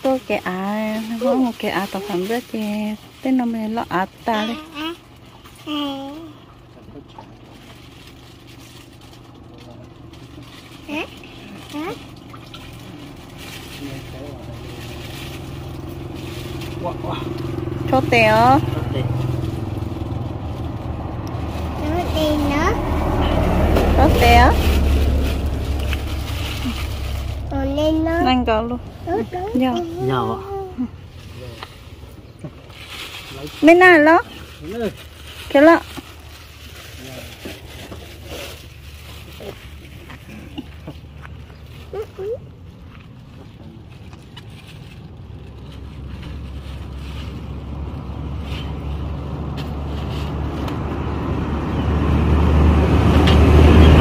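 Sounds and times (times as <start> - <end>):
low steady hum: 0.0 - 49.0
vehicle engine droning: 0.0 - 54.0
person calling out: 29.1 - 30.9.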